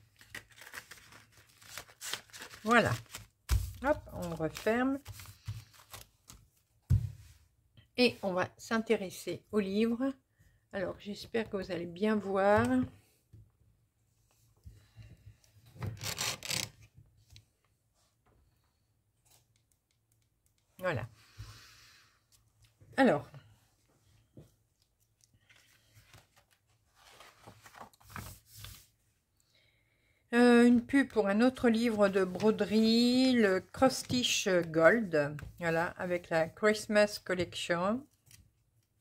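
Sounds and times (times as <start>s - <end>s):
paper envelope rustling: 0.0s - 6.6s, 25.4s - 28.9s.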